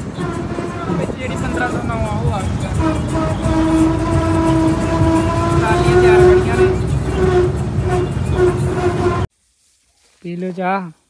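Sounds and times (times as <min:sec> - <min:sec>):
combine harvester engine running: 0:00.0 - 0:09.3.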